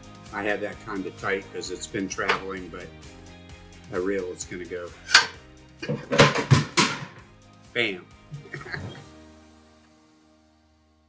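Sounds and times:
metal rail clanking into clamp: 5.1s - 7.2s.

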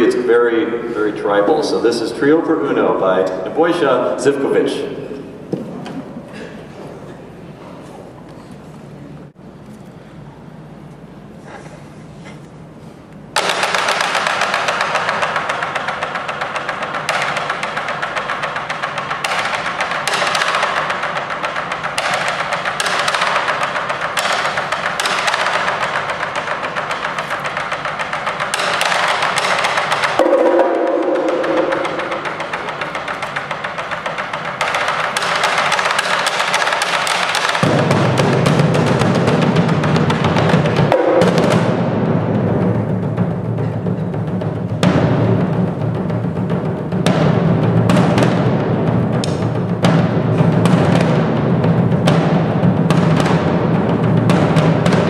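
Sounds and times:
bass drum: 13.4s - 55.0s
bongos: 13.4s - 55.0s
muted gongs: 13.4s - 55.0s.

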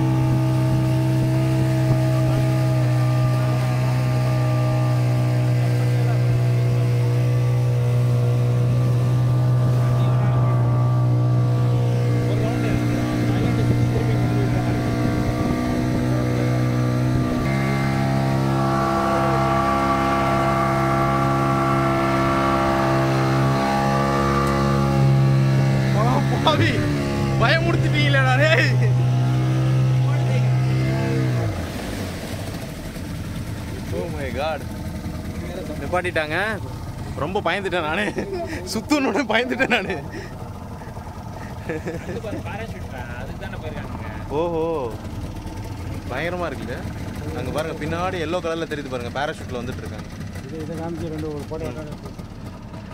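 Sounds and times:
motorboat engine running: 0.0s - 52.9s
water rushing: 0.0s - 52.9s
wind: 0.0s - 52.9s.

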